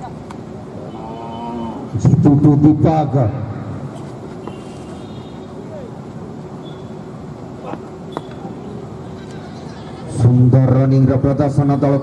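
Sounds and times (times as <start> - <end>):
crowd chatter: 7.5 - 10.9.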